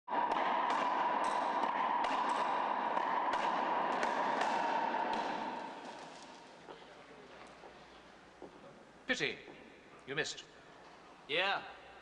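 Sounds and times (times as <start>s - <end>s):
racquetball smacks: 0.2s - 6.7s.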